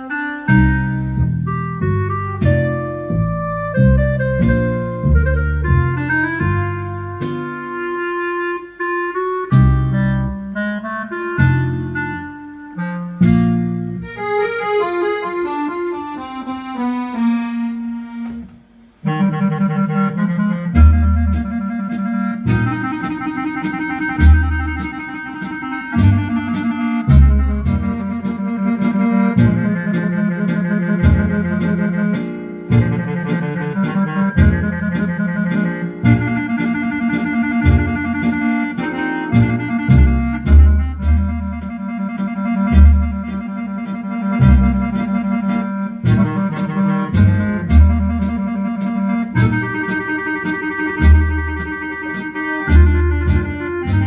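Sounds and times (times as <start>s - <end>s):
accordion melody: 0.0s - 54.0s
low bass notes: 0.0s - 54.0s.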